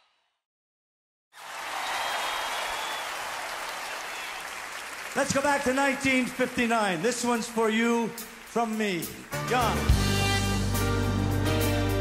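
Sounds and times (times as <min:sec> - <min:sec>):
audience applauding: 0:01.4 - 0:10.0.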